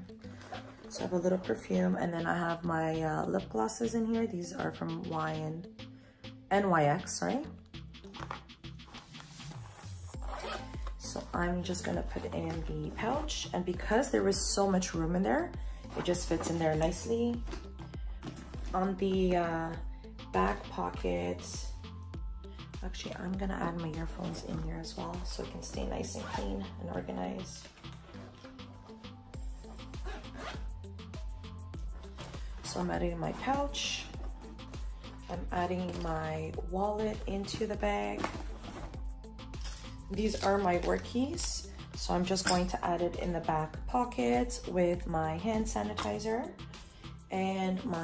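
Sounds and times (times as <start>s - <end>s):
soft background music: 0.0s - 48.0s
zipper being pulled: 8.0s - 13.4s, 24.2s - 36.2s, 37.4s - 41.4s.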